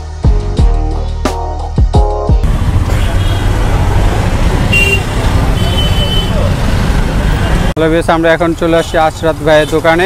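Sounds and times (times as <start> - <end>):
road traffic: 2.4 - 10.0.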